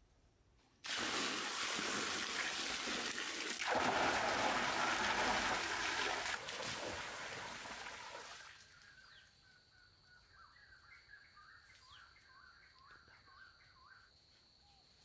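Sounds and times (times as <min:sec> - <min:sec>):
running water: 0:00.8 - 0:08.7
high insect hum: 0:08.6 - 0:15.0
bird chirping: 0:08.7 - 0:14.9.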